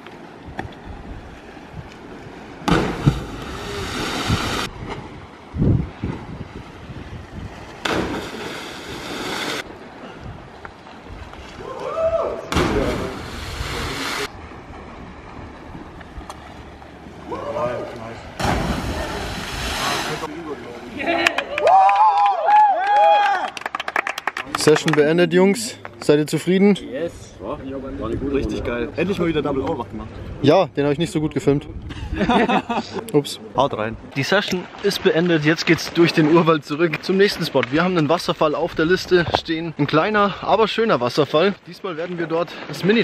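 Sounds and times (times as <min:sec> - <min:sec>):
loud splashes into water: 0:02.6 - 0:05.0, 0:07.7 - 0:09.6, 0:11.6 - 0:14.4, 0:18.4 - 0:20.3.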